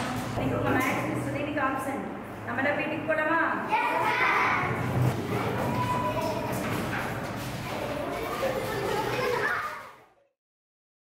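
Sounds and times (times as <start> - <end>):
children chattering and calling out: 3.6 - 10.3.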